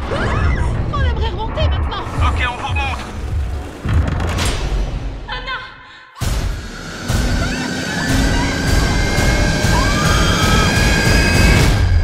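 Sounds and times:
dark trailer music swell: 0:06.2 - 0:12.0
evenly spaced pulses: 0:06.3 - 0:11.9
building drone with high tones: 0:06.4 - 0:12.0.

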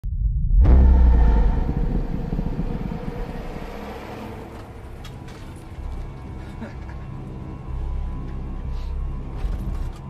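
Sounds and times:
deep vehicle rumble: 0:00.0 - 0:09.9.

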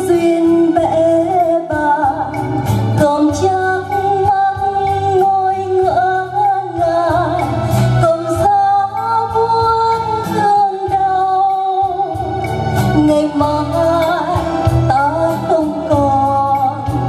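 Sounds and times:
keyboard: 0:00.0 - 0:17.0
woman singing into a microphone: 0:00.0 - 0:17.0.

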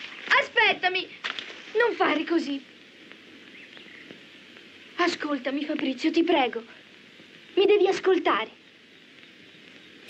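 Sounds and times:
low background hiss: 0:00.0 - 0:10.0
faint bird chirp: 0:01.8 - 0:10.0.

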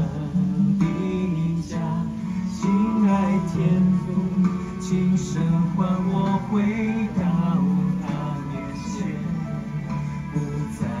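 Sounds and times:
guitar accompaniment: 0:00.0 - 0:11.0.

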